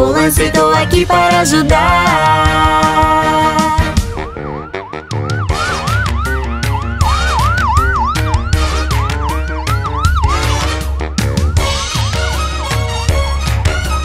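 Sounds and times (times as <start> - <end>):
instrumental music with steady beat: 0.0 - 14.0
ambulance siren: 3.0 - 12.4.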